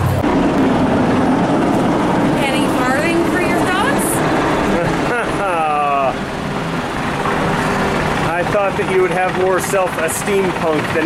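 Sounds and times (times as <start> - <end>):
loud engine drone: 0.0 - 11.0.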